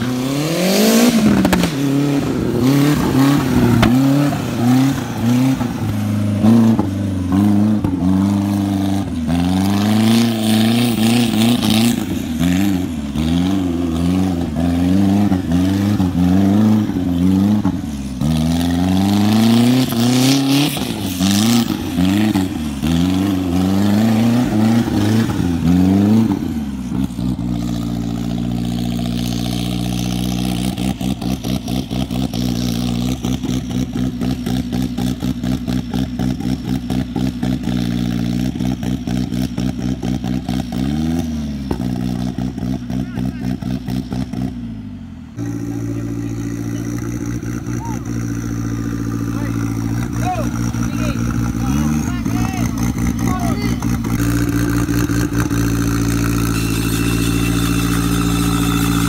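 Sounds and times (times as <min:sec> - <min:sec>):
buggy engine revving: 0:00.0 - 0:59.0.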